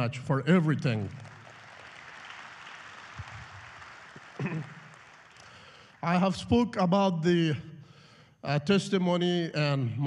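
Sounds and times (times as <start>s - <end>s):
audience applauding: 1.0s - 6.3s.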